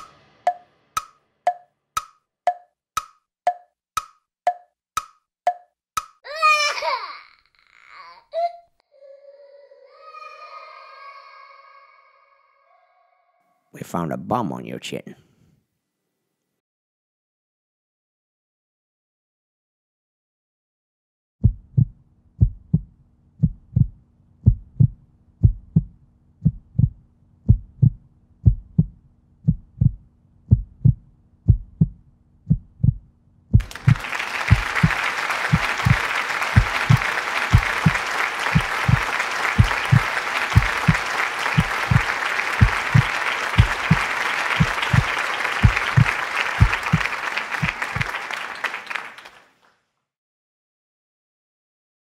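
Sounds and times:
low heartbeat-like thump: 0:21.4 - 0:34.9, 0:35.5 - 0:36.0, 0:36.6 - 0:38.0, 0:38.6 - 0:39.0, 0:40.6 - 0:41.0, 0:41.6 - 0:42.0, 0:42.6 - 0:44.0, 0:44.6 - 0:47.0
applause: 0:33.6 - 0:49.8.

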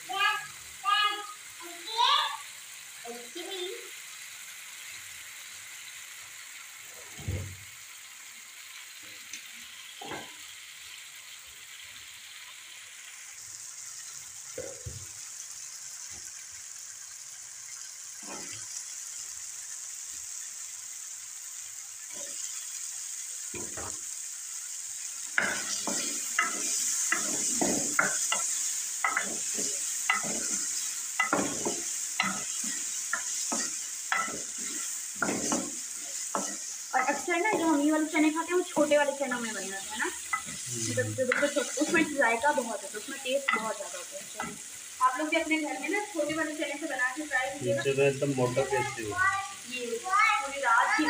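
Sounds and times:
masala sizzling in oil: 0:00.0 - 0:51.0
wooden spoon stirring and scraping: 0:25.4 - 0:37.9.

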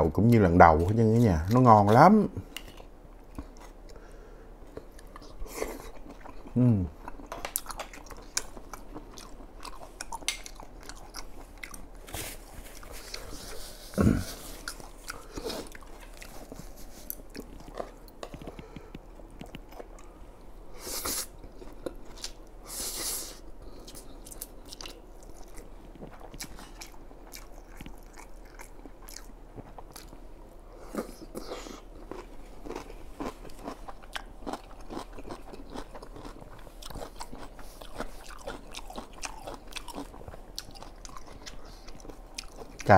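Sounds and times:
wet chewing and biting: 0:30.9 - 0:42.9.

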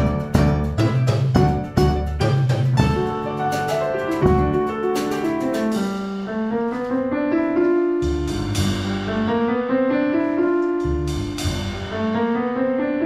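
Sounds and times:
plucked double bass: 0:00.0 - 0:05.8, 0:08.0 - 0:09.4, 0:10.8 - 0:12.1
drum kit: 0:00.0 - 0:06.6, 0:08.0 - 0:12.6
grand piano: 0:00.0 - 0:13.0.

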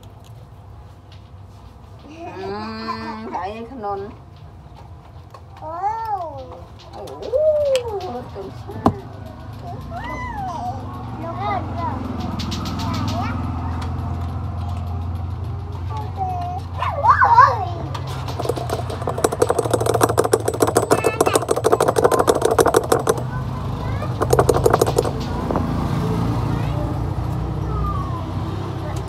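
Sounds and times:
low traffic rumble: 0:06.2 - 0:29.0
rapid rattling pulses: 0:17.9 - 0:26.9.

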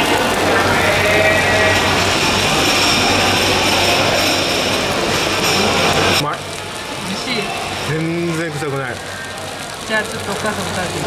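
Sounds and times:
meat sizzling on a grill: 0:00.0 - 0:11.0.

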